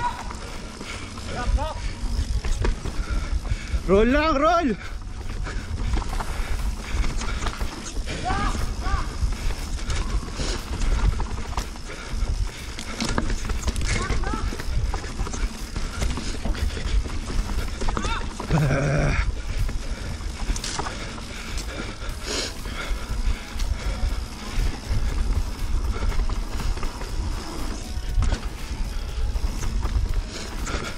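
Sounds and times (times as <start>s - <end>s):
bike rattling and knocking: 0.0s - 30.9s
rumble of wind and tyres: 0.0s - 30.9s.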